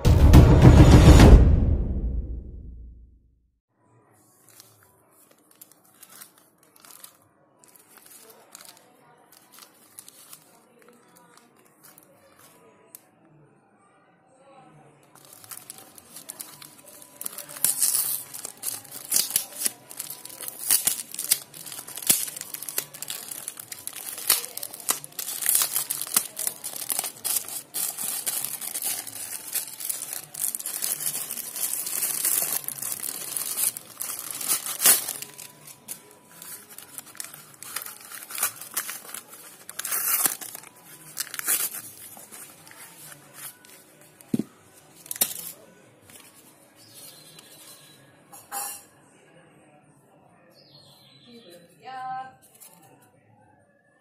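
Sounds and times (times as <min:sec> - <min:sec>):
plastic mailer tearing and crumpling: 0:04.5 - 0:12.0, 0:15.2 - 0:43.9, 0:45.0 - 0:45.6.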